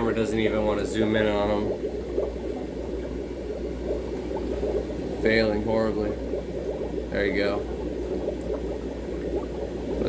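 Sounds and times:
aquarium water bubbling: 0.0 - 10.0
constant low hum: 0.0 - 10.0.

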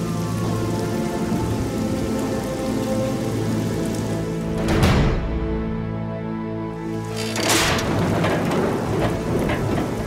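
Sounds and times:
rain pouring: 0.0 - 5.7, 6.6 - 10.0
thunder rolling: 7.4 - 10.0.

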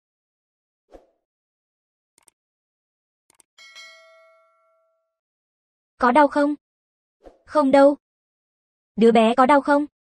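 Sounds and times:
struck metal object ringing: 3.6 - 5.1.

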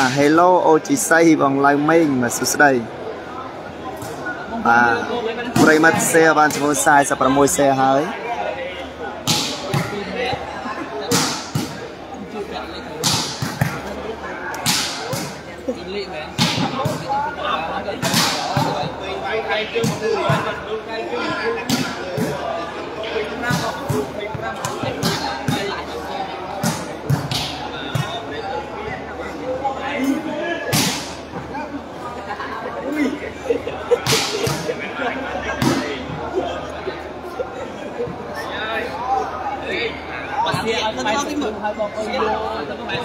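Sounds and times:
crowd voices: 0.0 - 43.0
spectators chattering: 0.0 - 43.0.

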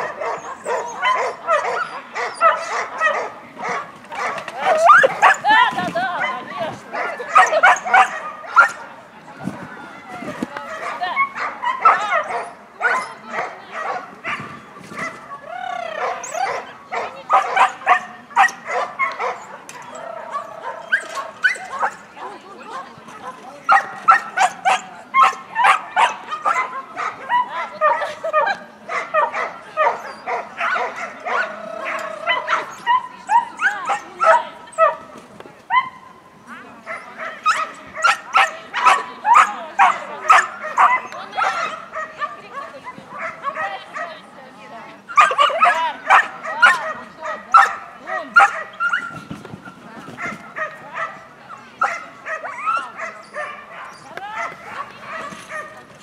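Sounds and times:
high dog yelps: 0.0 - 5.6, 7.0 - 8.8, 45.1 - 49.2
dogs barking and yipping: 0.0 - 8.9, 10.6 - 15.2, 15.8 - 35.0, 36.8 - 44.2, 45.1 - 49.3, 50.2 - 56.0.

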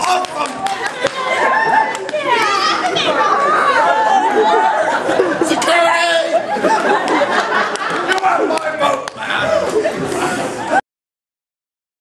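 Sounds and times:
people talking and calling out: 0.0 - 10.8.

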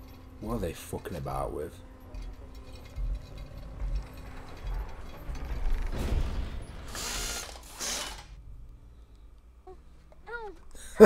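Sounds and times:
mechanical ratcheting and clanking: 0.0 - 8.4.

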